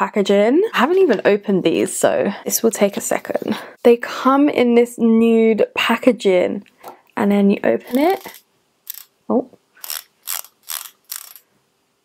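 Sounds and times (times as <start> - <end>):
lip balm twist ratcheting: 7.9 - 9.1, 9.8 - 11.5.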